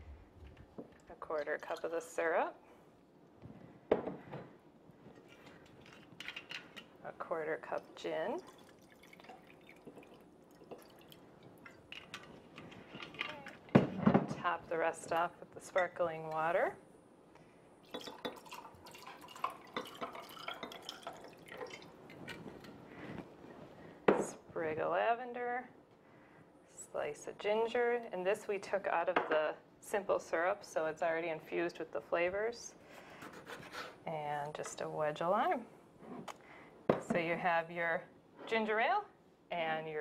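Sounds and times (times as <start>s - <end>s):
fizzing crackles: 8.3s - 12.0s, 17.8s - 22.6s
water pouring into glass: 8.4s - 11.8s, 17.9s - 22.0s
glassware clinking: 17.9s - 21.9s.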